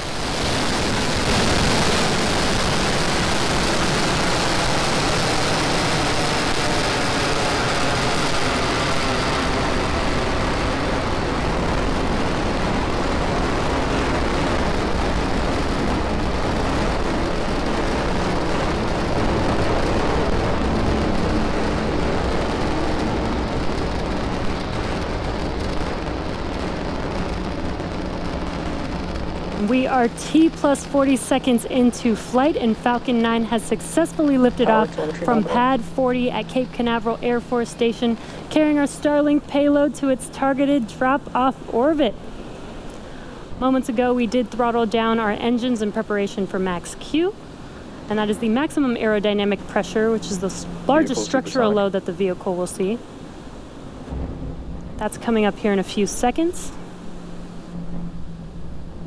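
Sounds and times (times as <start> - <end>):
rocket engines roaring: 0.0 - 59.0.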